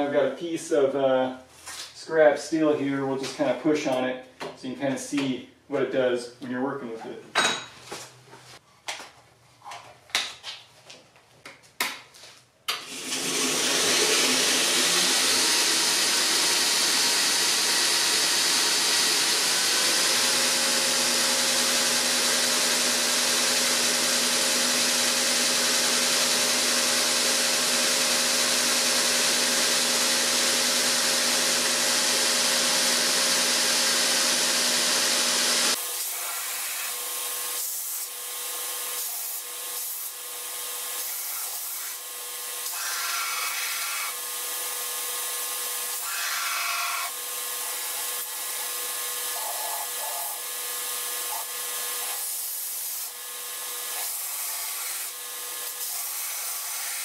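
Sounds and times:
belt grinder grinding steel: 0:12.8 - 0:57.0.

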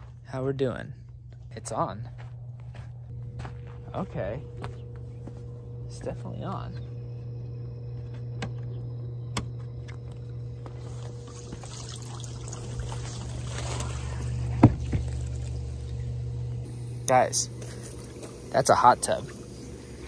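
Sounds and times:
pump hum: 0:00.0 - 0:20.0
churning bubbling water: 0:10.8 - 0:16.3.

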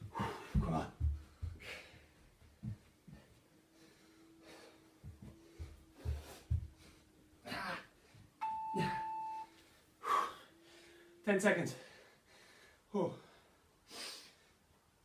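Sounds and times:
electronic beep: 0:08.4 - 0:09.5.

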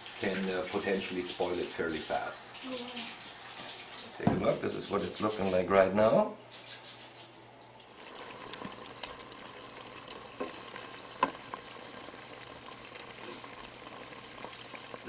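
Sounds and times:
faint sizzle of melted butter: 0:07.9 - 0:15.0.

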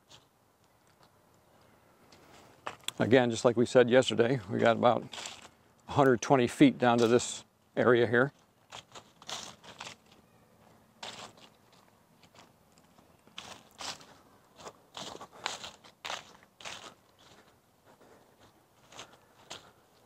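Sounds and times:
footsteps crunching dry leaves: 0:04.5 - 0:05.6, 0:08.3 - 0:20.0.

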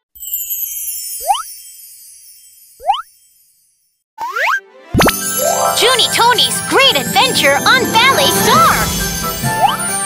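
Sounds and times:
bright children's theme music: 0:00.1 - 0:10.0
upward-gliding cartoon sound effect: 0:06.9 - 0:09.8.

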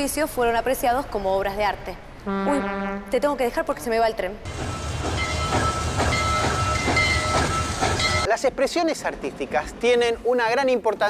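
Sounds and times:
train rumble: 0:04.4 - 0:10.7.

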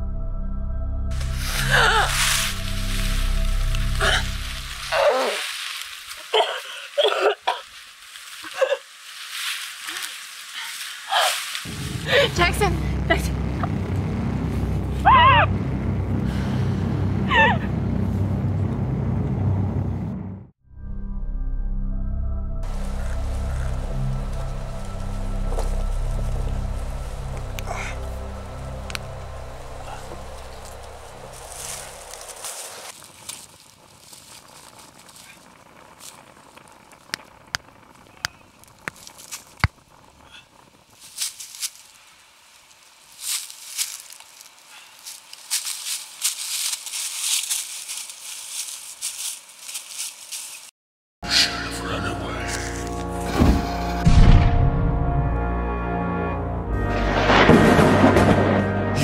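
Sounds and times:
music with deep low drone: 0:00.0 - 0:05.0, 0:11.7 - 0:32.9, 0:51.2 - 0:59.0
dry leaf litter crackling and rustling: 0:01.2 - 0:12.6, 0:22.7 - 0:50.7, 0:52.2 - 0:53.2.

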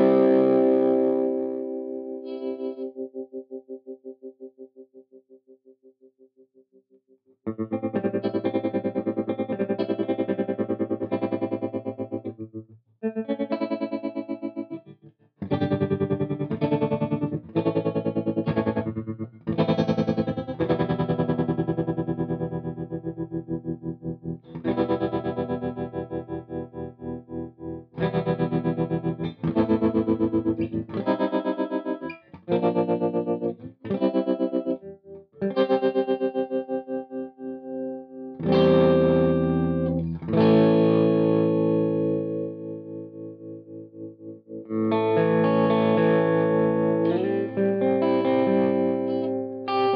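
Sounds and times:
electric guitar with tremolo: 0:00.0 - 0:04.8, 0:07.5 - 0:49.9.

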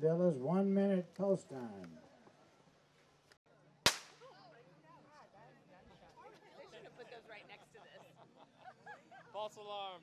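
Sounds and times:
starting gun crack: 0:03.9 - 0:04.2.

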